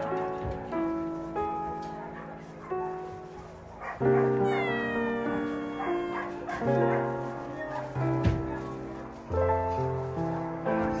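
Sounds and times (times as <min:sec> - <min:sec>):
soft background music: 0:00.0 - 0:11.0
cat meowing: 0:04.2 - 0:06.7.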